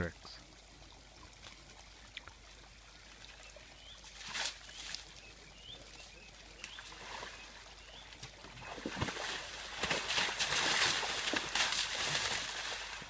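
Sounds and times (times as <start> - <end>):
elephant splashing mud and water: 3.8 - 5.8, 6.5 - 13.0.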